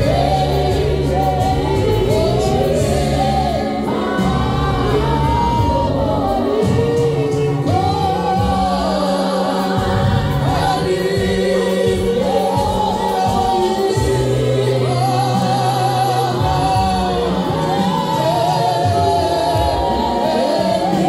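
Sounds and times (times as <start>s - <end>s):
group singing gospel in harmony: 0.0s - 21.0s.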